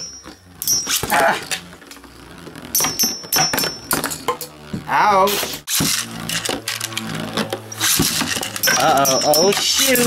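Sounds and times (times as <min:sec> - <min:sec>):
spinning top whirring: 0:00.0 - 0:10.0
spinning top launch burst: 0:07.7 - 0:10.0.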